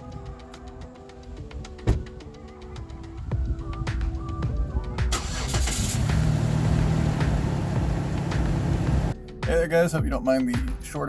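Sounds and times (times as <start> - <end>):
car engine starting and idling: 5.1 - 9.2.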